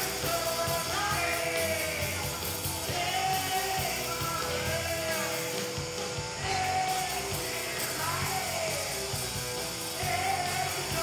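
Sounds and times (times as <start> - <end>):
person singing: 0.0 - 9.2, 9.9 - 11.0
bass guitar: 0.0 - 11.0
drum kit with cymbals: 0.0 - 11.0
electric guitars: 0.0 - 11.0.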